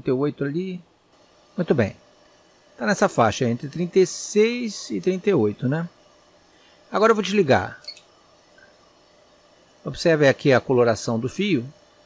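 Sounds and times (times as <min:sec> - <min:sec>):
man speaking: 0:00.0 - 0:00.9, 0:01.6 - 0:02.0, 0:02.8 - 0:05.9, 0:06.9 - 0:07.9, 0:09.9 - 0:11.8.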